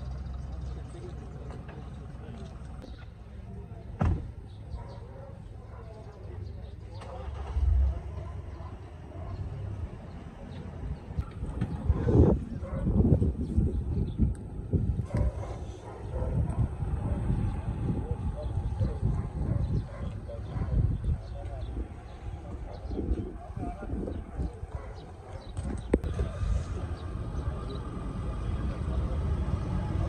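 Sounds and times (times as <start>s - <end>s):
low uneven rumble: 0.0s - 30.0s
indistinct voices: 15.0s - 30.0s.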